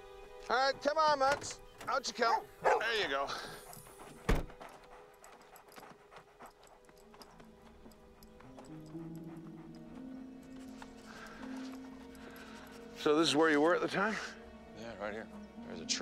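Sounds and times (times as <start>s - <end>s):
low sustained music score: 0.0s - 16.0s
footsteps on dirt: 3.6s - 12.1s
car door slamming: 4.2s - 4.7s.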